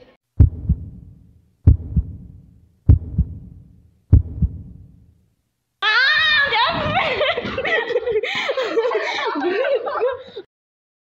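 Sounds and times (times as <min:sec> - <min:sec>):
heartbeat thumps: 0:00.4 - 0:05.1.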